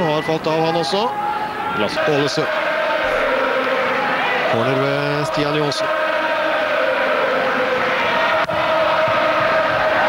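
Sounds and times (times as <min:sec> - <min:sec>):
stadium crowd chanting: 0:01.1 - 0:10.0.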